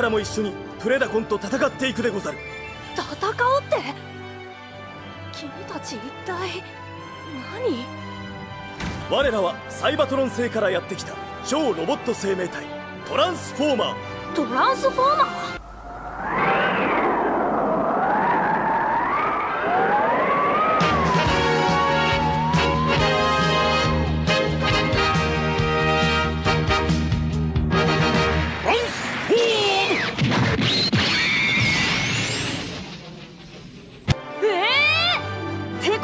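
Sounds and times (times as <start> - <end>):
whistling tone drifting in pitch: 2.1 - 3.2, 15.6 - 24.0
rising whistle: 2.2 - 3.0, 15.6 - 24.1
cartoon rushing noise: 15.6 - 23.2
high whine: 15.6 - 23.4.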